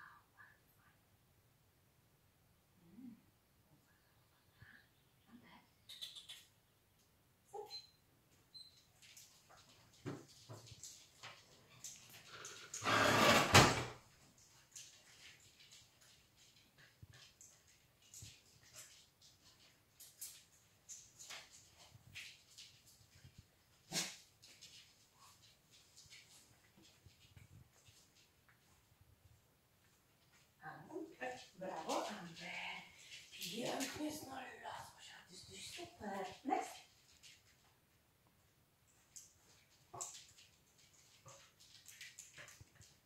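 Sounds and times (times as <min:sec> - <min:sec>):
woman speaking: 0:30.6 - 0:36.8.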